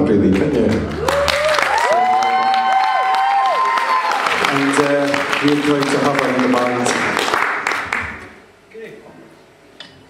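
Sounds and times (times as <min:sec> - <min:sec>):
audience applauding: 0:00.0 - 0:08.4
whoops of cheering: 0:01.0 - 0:04.4.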